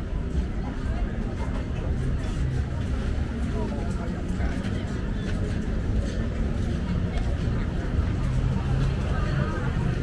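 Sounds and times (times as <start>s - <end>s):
voices of shoppers and vendors: 0.0s - 10.0s.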